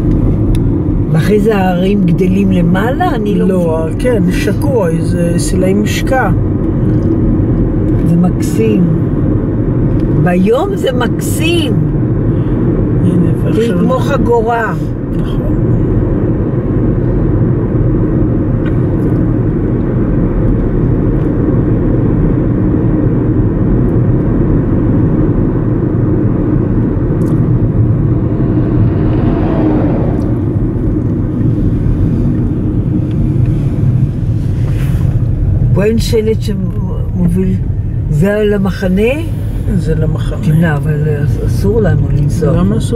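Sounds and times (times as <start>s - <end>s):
car cabin road and engine noise: 0.0s - 42.9s
truck passing: 21.4s - 35.7s.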